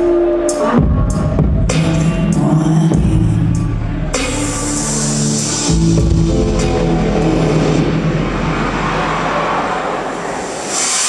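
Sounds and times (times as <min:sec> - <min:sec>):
dance track: 0:00.0 - 0:11.0
low sustained rumble: 0:02.4 - 0:11.0.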